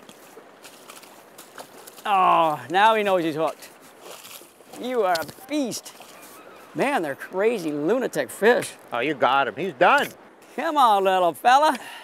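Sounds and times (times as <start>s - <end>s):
river flowing: 0.0s - 12.0s.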